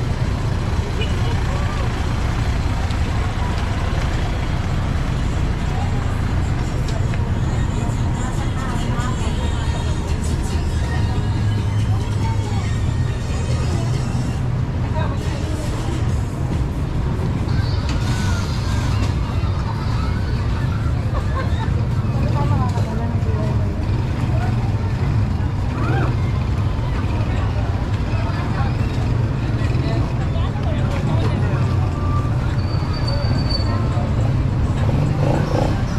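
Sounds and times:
street traffic rumble: 0:00.0 - 0:35.9
voices of passers-by: 0:00.0 - 0:35.9.

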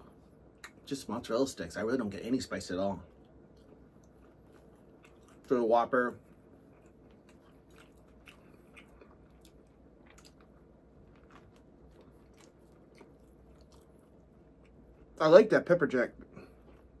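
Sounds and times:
man chewing food: 0:00.0 - 0:00.9, 0:03.0 - 0:15.2, 0:16.2 - 0:17.0
soft crunching: 0:02.7 - 0:15.3.

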